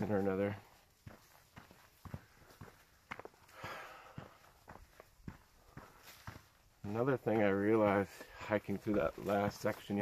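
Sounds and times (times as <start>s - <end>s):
man talking: 0.0s - 0.8s, 6.8s - 10.0s
hiker footsteps on trail: 0.0s - 10.0s.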